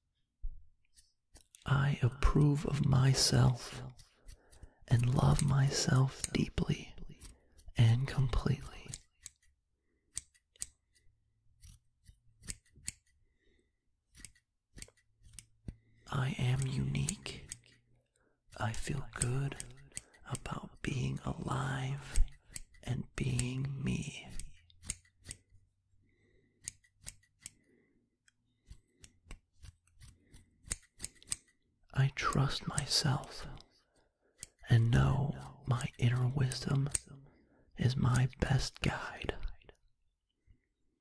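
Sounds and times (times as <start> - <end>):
scissors snipping: 0.9 - 1.6, 3.7 - 6.4, 7.0 - 13.2, 14.1 - 15.8, 16.5 - 17.9, 18.8 - 21.1, 22.0 - 23.7, 24.3 - 25.6, 26.6 - 27.6, 28.2 - 31.6, 34.3 - 37.1
soft voice: 1.6 - 4.0, 4.9 - 7.1, 7.8 - 9.0, 16.1 - 17.6, 18.6 - 24.5, 31.9 - 33.6, 34.6 - 37.2, 37.8 - 39.8.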